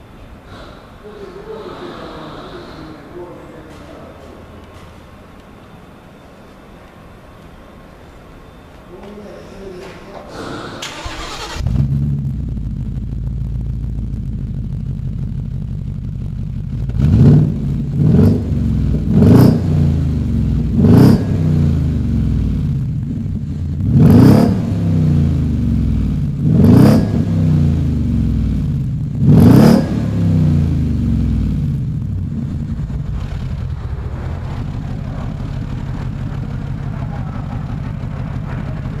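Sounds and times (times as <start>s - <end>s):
car engine starting and idling: 0.0s - 8.8s, 10.3s - 39.0s
engine revving: 10.8s - 39.0s.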